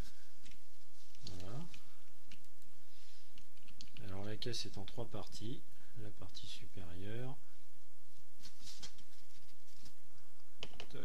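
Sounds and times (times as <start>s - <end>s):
plastic wrap rustling and crinkling: 8.3s - 10.1s.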